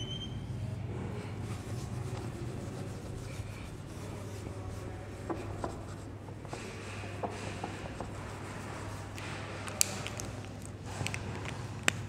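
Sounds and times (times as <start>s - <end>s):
steady low hum: 0.0s - 12.0s
marker rubbing on whiteboard: 1.4s - 9.2s.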